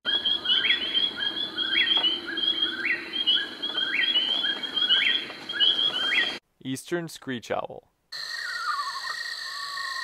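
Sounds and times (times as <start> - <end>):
bird singing repeated phrase: 0.1 - 6.4.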